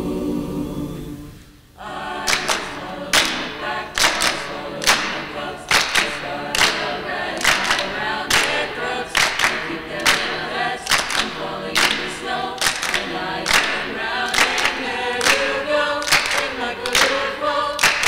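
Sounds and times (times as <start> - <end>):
choir singing unaccompanied: 0.0 - 18.0
hands clapping on the beat: 2.2 - 18.0.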